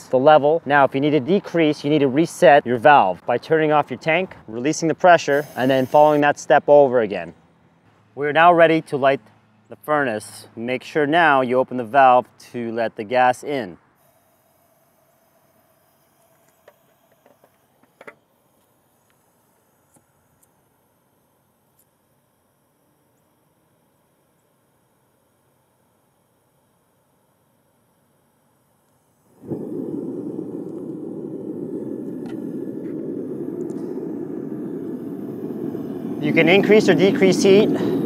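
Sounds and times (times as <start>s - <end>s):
furnace burner rushing: 29.2s - 38.0s.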